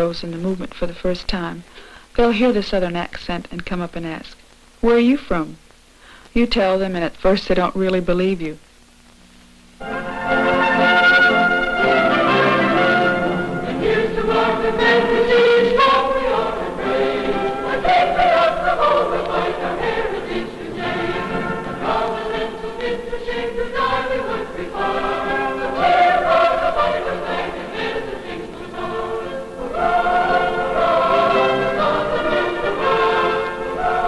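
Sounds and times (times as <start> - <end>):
choir singing in parts: 9.8 - 34.0.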